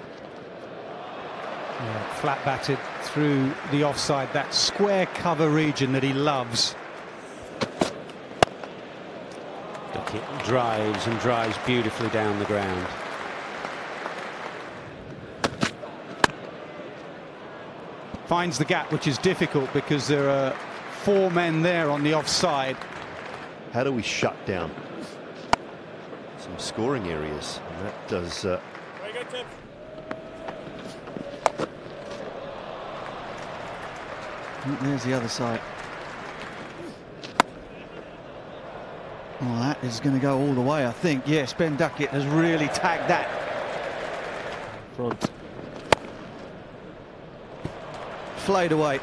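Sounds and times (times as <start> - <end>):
crowd noise: 0.0 - 49.0
cricket bat hitting ball: 7.5 - 8.8, 15.4 - 16.4, 30.0 - 32.4, 35.7 - 38.0, 45.1 - 46.6
crowd murmur: 24.3 - 41.2.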